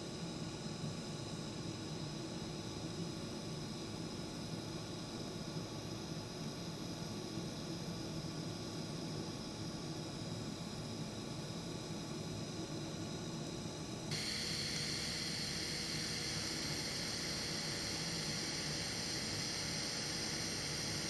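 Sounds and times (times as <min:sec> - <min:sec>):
welding arc hissing: 0:14.1 - 0:21.0.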